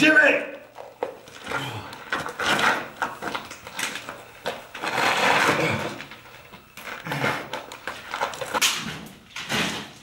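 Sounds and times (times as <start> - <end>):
man groaning: 1.5 - 2.0.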